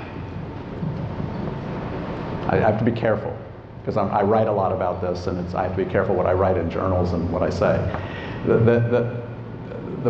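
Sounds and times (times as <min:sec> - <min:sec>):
faint steady whine: 0:00.0 - 0:10.0
hall background hum: 0:00.0 - 0:10.0.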